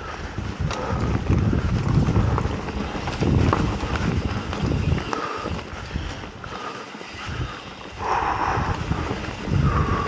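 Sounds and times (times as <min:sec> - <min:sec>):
bike rattling over bumps: 0:00.0 - 0:10.0
bike tyres rolling on dirt: 0:00.0 - 0:10.0
wind rumble on microphone: 0:00.0 - 0:10.0.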